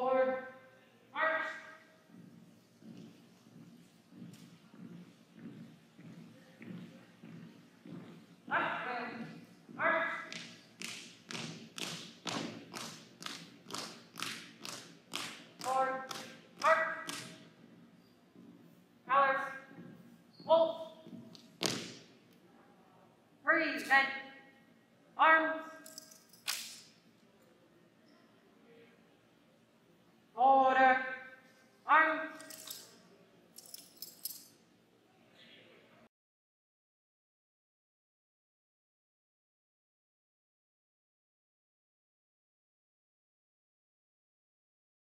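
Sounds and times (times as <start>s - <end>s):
person shouting command: 1.1s - 1.8s, 8.5s - 9.2s, 9.8s - 10.3s, 15.6s - 17.3s, 19.1s - 19.6s, 25.2s - 25.8s, 31.9s - 32.5s
marching footsteps on hardwood floor: 2.0s - 8.6s, 20.9s - 22.0s
sling hardware jangling: 25.8s - 26.8s, 32.3s - 34.6s
rifles clicking and rattling: 25.8s - 26.9s, 32.3s - 33.0s, 33.6s - 34.5s
hands slapping rifles: 26.4s - 26.9s.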